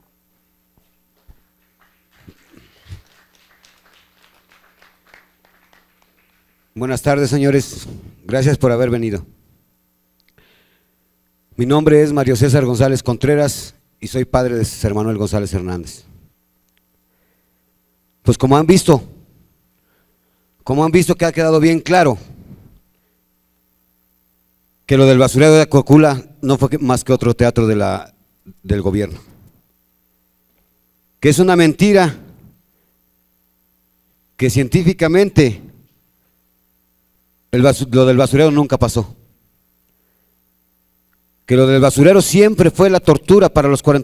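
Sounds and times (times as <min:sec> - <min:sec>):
faint electrical hum: 0:00.0 - 0:44.0
man speaking into a microphone: 0:06.8 - 0:09.4, 0:11.6 - 0:16.2, 0:18.2 - 0:19.2, 0:20.6 - 0:22.4, 0:24.9 - 0:29.5, 0:31.2 - 0:32.5, 0:34.4 - 0:35.8, 0:37.5 - 0:39.3, 0:41.5 - 0:44.0.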